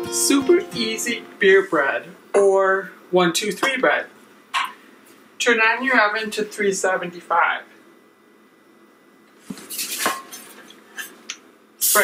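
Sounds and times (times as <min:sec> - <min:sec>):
metal pan clanking and scraping: 0:09.7 - 0:11.1.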